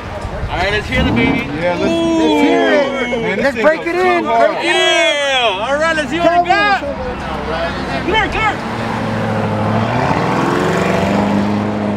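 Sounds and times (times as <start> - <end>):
car engine accelerating: 0.6 - 3.4, 7.1 - 11.9.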